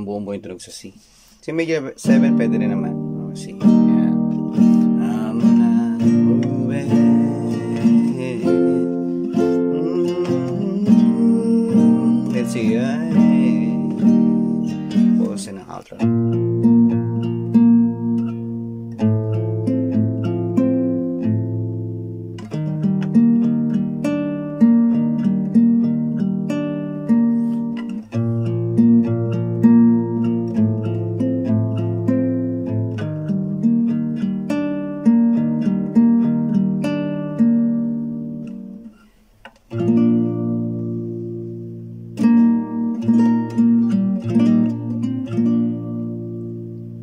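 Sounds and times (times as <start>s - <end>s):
classical guitar picking chords: 0.0s - 47.0s.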